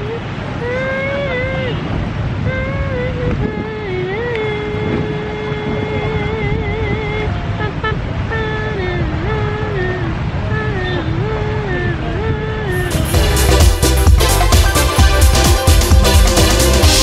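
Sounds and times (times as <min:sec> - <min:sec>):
low rumble of street traffic: 0:00.0 - 0:17.0.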